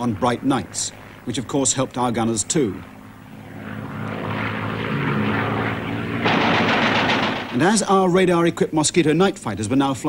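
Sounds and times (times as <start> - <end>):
propeller aircraft engines droning: 0.0 - 10.0.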